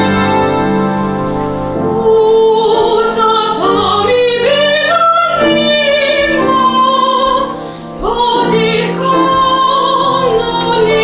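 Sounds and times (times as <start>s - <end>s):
upright piano accompaniment: 0.0s - 11.0s
woman singing: 1.9s - 11.0s.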